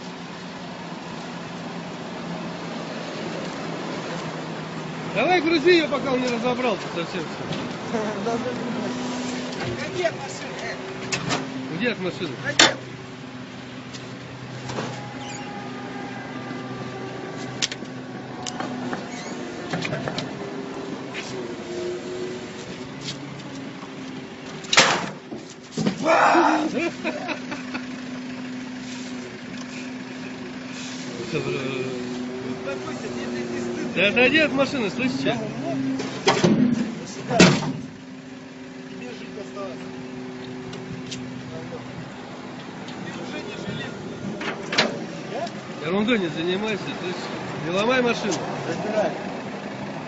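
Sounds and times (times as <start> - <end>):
street noise: 0.0 - 50.0
vehicle engine idling: 0.0 - 50.0.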